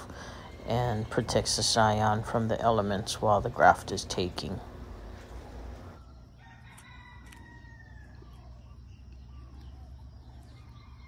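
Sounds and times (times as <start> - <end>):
rooster crowing: 5.4 - 8.6, 10.5 - 11.0.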